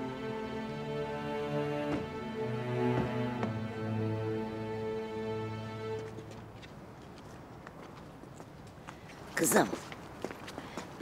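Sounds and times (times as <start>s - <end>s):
music cue: 0.0s - 6.4s
quiet street ambience: 0.0s - 11.0s
faint footsteps on pavement: 4.5s - 11.0s.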